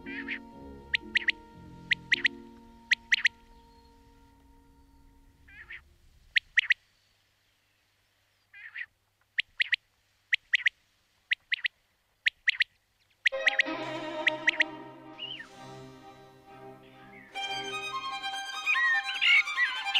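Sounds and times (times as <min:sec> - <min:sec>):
music track: 0:00.0 - 0:05.5, 0:13.3 - 0:19.9
bird chirping: 0:00.0 - 0:19.9.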